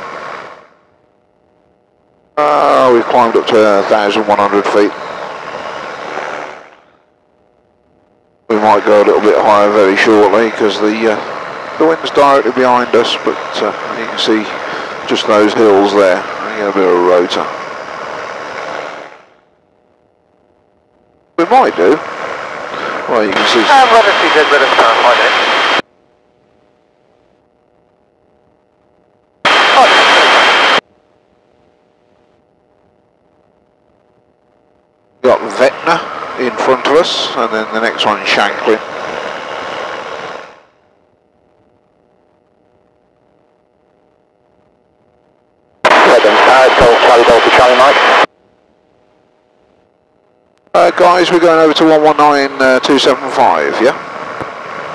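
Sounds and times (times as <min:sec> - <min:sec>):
faint steady hum: 0:00.0 - 0:54.9
radio hiss: 0:00.0 - 0:54.9
distorted radio speech: 0:02.4 - 0:06.3, 0:08.5 - 0:17.6, 0:21.4 - 0:25.8, 0:29.5 - 0:30.8, 0:35.2 - 0:39.2, 0:45.8 - 0:48.3, 0:50.7 - 0:54.1
microlight engine and wind: 0:52.0 - 0:54.9.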